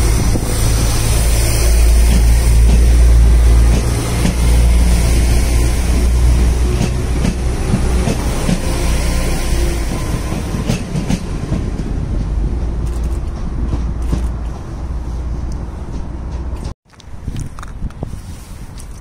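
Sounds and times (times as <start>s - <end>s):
train low rumble: 0.0s - 19.0s.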